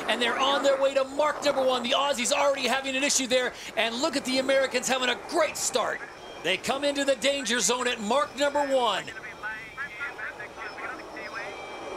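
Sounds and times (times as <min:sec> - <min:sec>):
steady rushing noise: 0:00.0 - 0:11.9.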